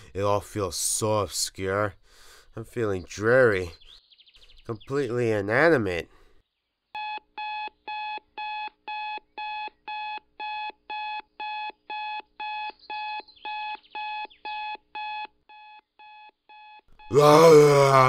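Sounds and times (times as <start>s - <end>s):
digital alarm clock beeping: 7.0s - 17.1s.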